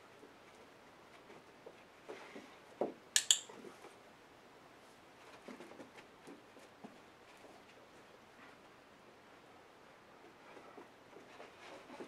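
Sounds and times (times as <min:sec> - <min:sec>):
training clicker click: 0:03.2 - 0:03.5.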